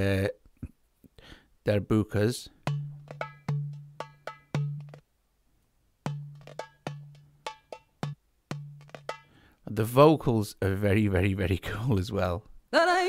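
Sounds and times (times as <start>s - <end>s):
goblet drum loops: 2.6s - 5.0s, 6.1s - 9.3s.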